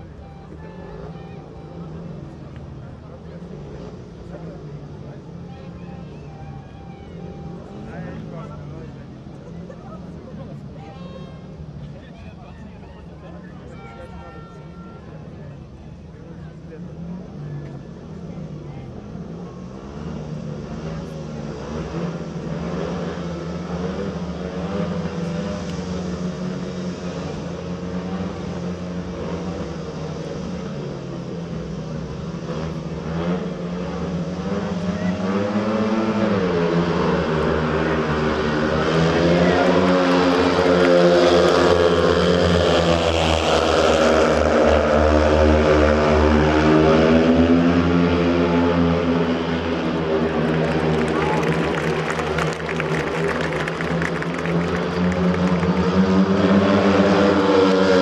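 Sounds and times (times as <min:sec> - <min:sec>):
motorcycle engines revving: 0:16.1 - 0:58.0.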